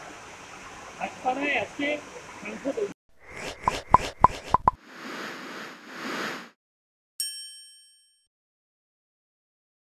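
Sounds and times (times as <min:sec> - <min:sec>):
ringing chime ding: 0:07.2 - 0:08.3.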